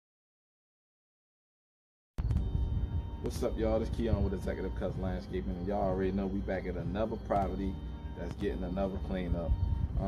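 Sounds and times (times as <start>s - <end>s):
low outdoor rumble: 2.2s - 10.0s
quiet background music: 2.2s - 10.0s.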